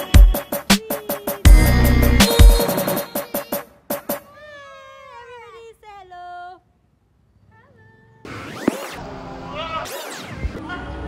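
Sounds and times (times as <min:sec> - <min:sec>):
electronic music: 0:00.0 - 0:04.1.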